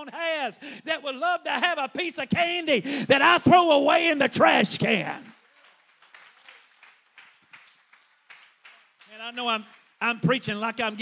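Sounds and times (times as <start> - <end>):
faint hand claps: 5.3 - 10.0.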